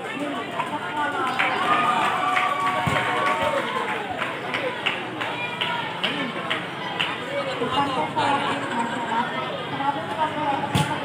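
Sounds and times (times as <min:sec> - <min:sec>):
crowd babble: 0:00.0 - 0:11.0.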